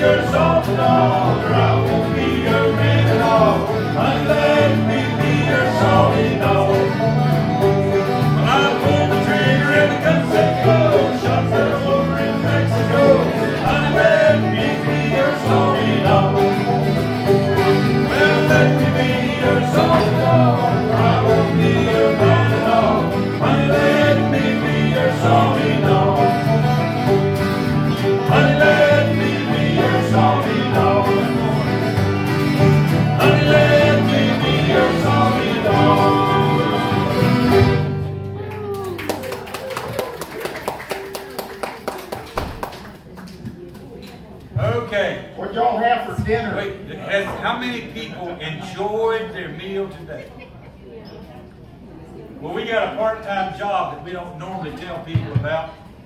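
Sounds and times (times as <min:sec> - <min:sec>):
bluegrass band playing: 0:00.0 - 0:39.8.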